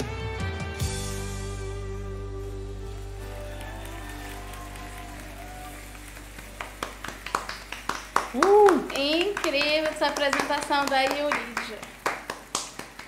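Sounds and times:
live pop-rock song: 0.0s - 4.6s
people clapping: 2.9s - 13.0s
vocal cheer: 3.2s - 6.1s.

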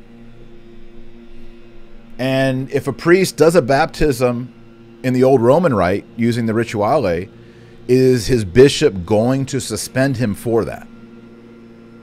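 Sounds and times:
leaf blower running: 0.0s - 12.0s.

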